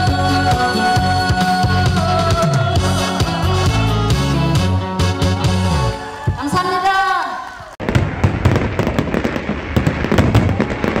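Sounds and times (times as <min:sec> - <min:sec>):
backing music held chord: 0:00.0 - 0:06.0
dense crackle of sharp pops: 0:07.8 - 0:11.0.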